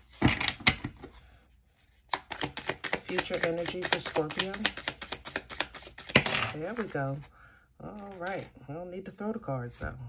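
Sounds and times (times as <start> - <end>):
cards being shuffled: 1.8 - 7.3, 8.0 - 8.5.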